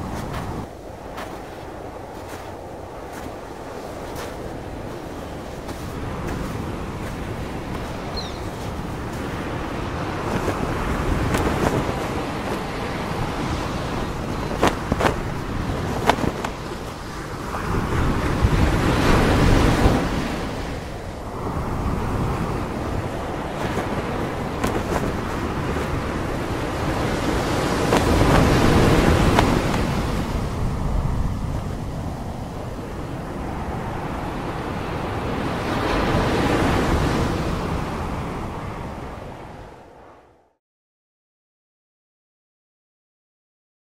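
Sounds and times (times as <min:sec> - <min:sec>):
ocean waves breaking: 0:00.0 - 0:39.8.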